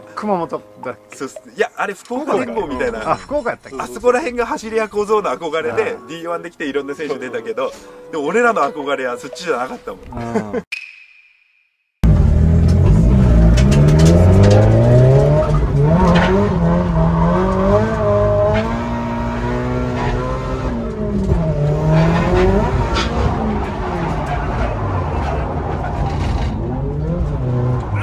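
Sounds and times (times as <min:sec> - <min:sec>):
car engine revving: 0:12.0 - 0:28.0.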